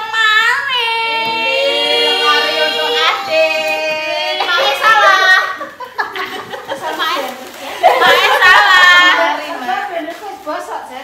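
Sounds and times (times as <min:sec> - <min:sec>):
high voice singing held notes: 0:00.9 - 0:03.8.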